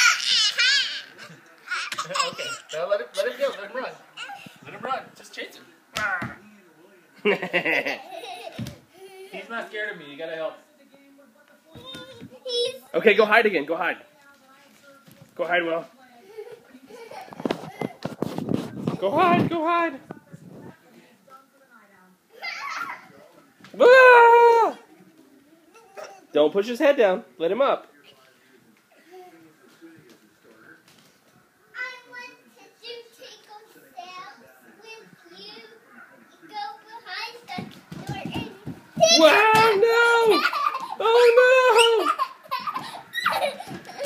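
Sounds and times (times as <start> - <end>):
child running on hardwood floor: 8.5 - 8.8, 37.6 - 39.8, 42.5 - 44.0.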